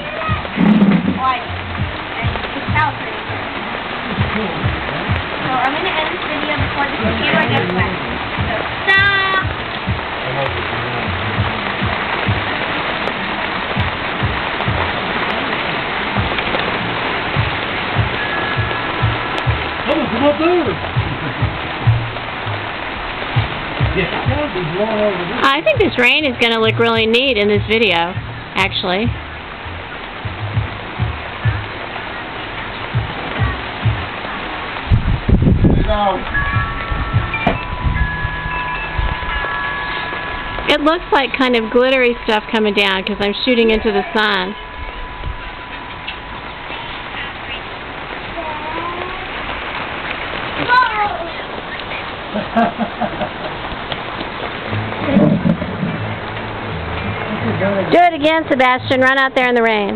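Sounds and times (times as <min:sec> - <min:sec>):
held musical tones: 0:00.0 - 0:52.3
heavy rain falling: 0:00.0 - 0:59.9.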